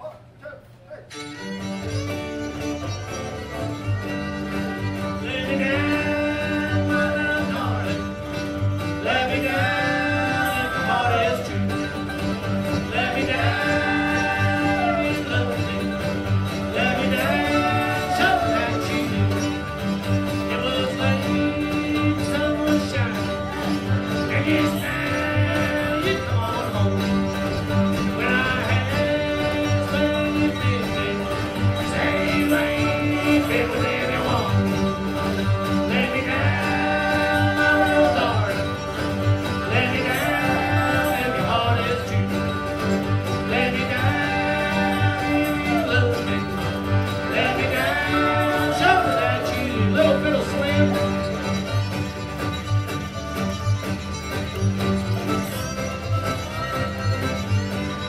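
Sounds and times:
bluegrass band playing: 1.0s - 58.0s.

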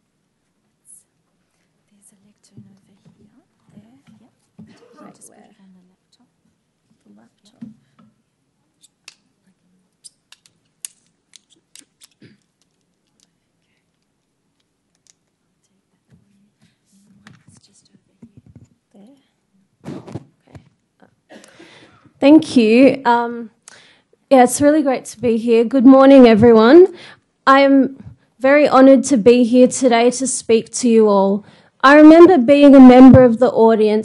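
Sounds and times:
person whispering: 15.6s - 19.7s.

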